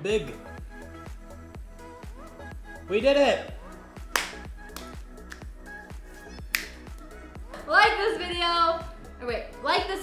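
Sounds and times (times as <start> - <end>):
background music with steady beat: 0.0 - 10.0
hand slap high-five: 4.1 - 5.5, 6.5 - 6.8.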